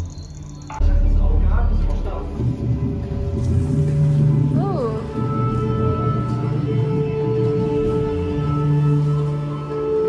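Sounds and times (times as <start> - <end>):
ambient electronic drones: 0.0 - 10.0.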